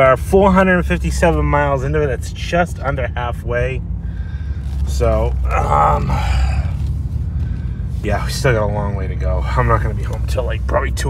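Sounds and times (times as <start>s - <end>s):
car engine low rumble: 0.0s - 11.0s.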